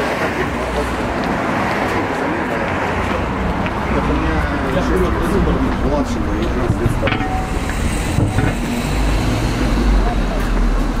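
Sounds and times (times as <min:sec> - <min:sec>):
people talking: 0:00.0 - 0:08.6, 0:09.6 - 0:11.0
traffic rumble: 0:00.0 - 0:11.0.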